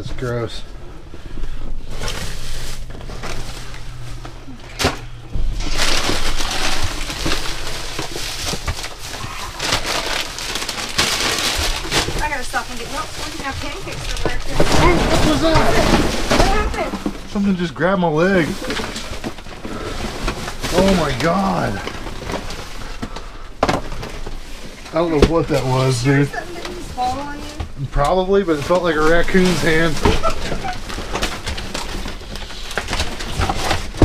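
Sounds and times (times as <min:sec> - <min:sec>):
plastic bags and cardboard rustling: 0:00.0 - 0:34.0.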